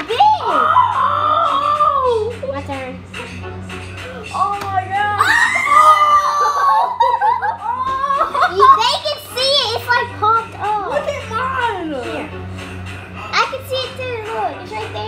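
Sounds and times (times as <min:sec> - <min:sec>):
children squealing and vocalising: 0:00.2 - 0:02.3, 0:05.2 - 0:10.0.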